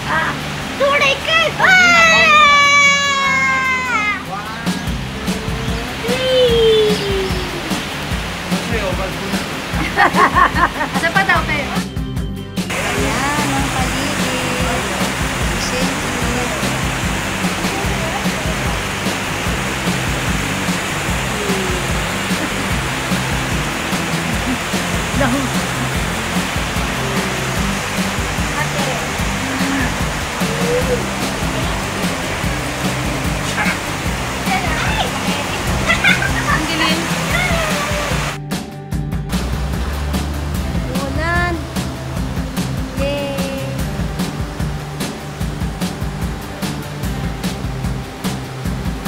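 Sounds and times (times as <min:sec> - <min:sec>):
water rushing over rocks: 0:00.0 - 0:12.0, 0:12.6 - 0:38.4, 0:39.2 - 0:49.0
background music: 0:00.0 - 0:49.0.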